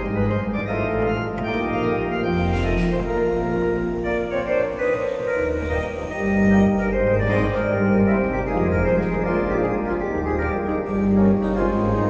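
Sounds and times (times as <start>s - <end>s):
electronic organ playing: 0.0s - 12.0s.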